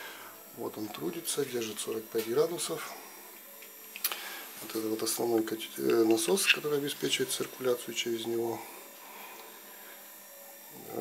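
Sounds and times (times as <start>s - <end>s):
circulation pump hum: 0.0s - 11.0s.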